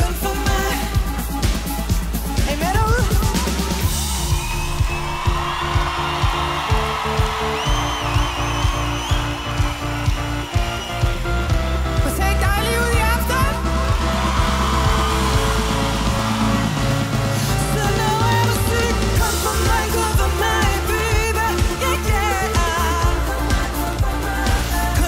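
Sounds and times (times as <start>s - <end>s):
kick drum beat: 0.0s - 16.4s
live electronic pop music: 0.0s - 25.0s
synth notes: 3.2s - 21.4s.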